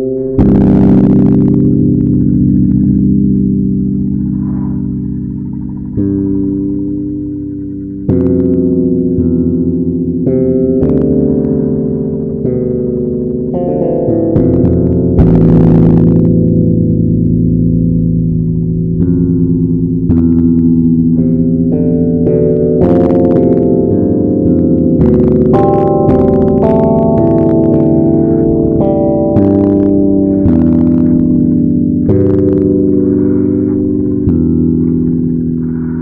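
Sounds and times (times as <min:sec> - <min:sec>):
guitar chord ringing: 0:00.0 - 0:36.0.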